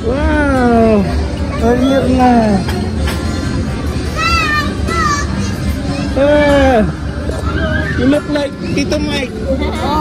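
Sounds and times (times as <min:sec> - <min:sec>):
murmur of background chatter: 0:00.0 - 0:10.0.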